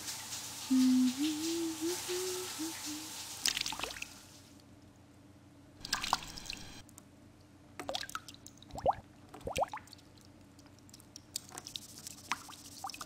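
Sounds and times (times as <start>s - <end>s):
water drops plopping: 7.8s - 9.9s.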